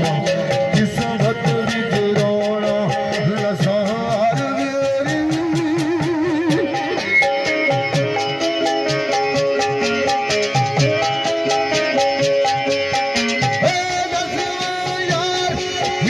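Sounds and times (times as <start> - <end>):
person singing with vibrato: 0.0 - 7.4
folk melody instruments: 0.0 - 16.0
steady drum beat: 0.0 - 16.0.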